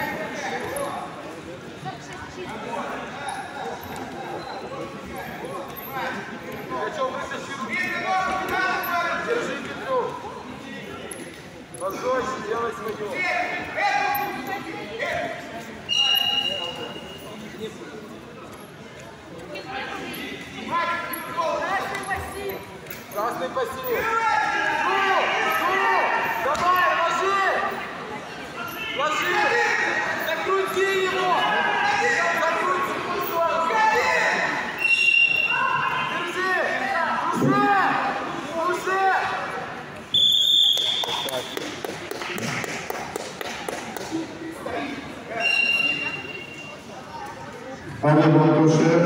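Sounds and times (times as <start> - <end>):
faint hall noise: 0.0 - 49.0.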